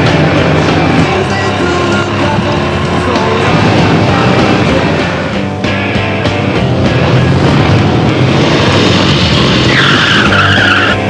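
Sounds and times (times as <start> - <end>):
motorcycle tyre squeal: 8.4 - 11.0.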